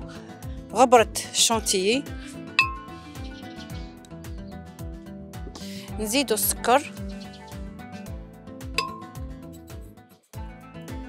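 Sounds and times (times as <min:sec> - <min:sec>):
background music with steady beat: 0:00.0 - 0:11.0
glass clink: 0:02.6 - 0:02.9, 0:08.8 - 0:09.2.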